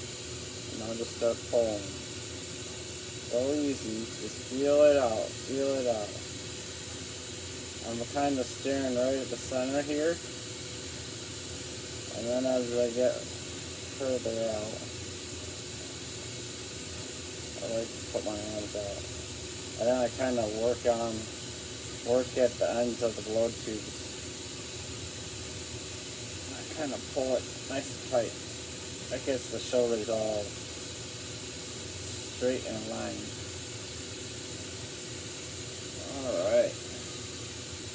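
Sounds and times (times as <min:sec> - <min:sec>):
torch flame hissing: 0:00.0 - 0:37.9.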